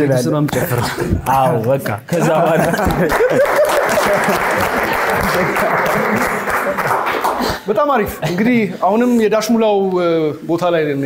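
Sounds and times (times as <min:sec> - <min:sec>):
hands clapping: 0:01.6 - 0:07.7.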